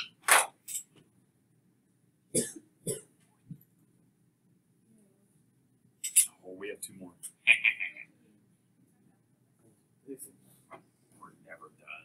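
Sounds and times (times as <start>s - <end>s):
person coughing: 2.4s - 3.0s.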